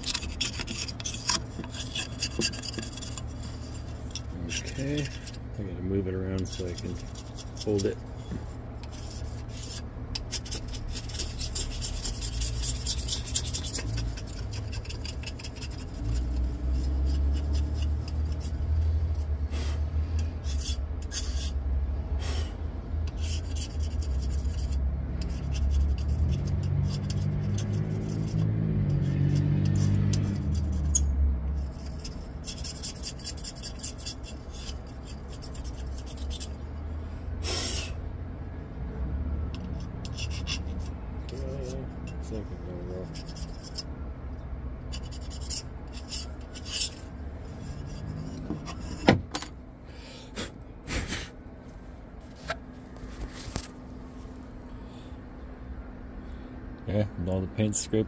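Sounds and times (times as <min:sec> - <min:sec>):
rasping scraping on tile: 0:00.0 - 0:05.4, 0:06.4 - 0:19.0, 0:23.1 - 0:31.0, 0:31.6 - 0:36.6, 0:39.8 - 0:41.8, 0:44.9 - 0:49.0.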